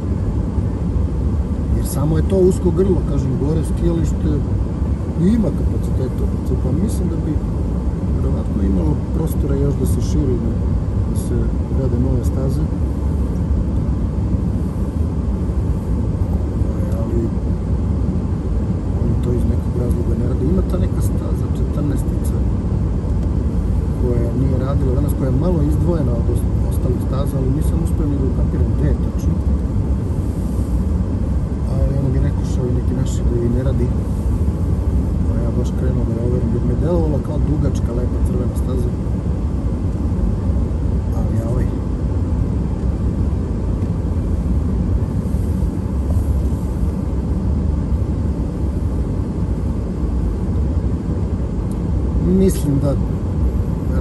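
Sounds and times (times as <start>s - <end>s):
car cabin road rumble: 0.0s - 54.0s.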